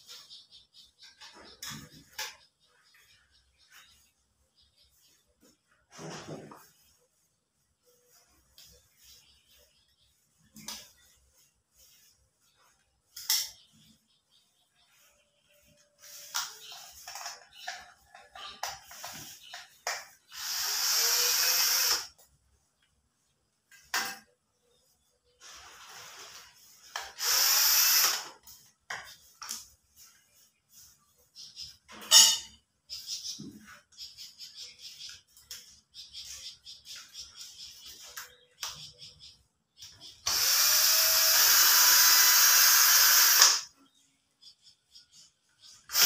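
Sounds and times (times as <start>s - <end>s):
cordless power driver running: 20.3s - 22.1s, 27.2s - 28.3s, 40.2s - 43.6s.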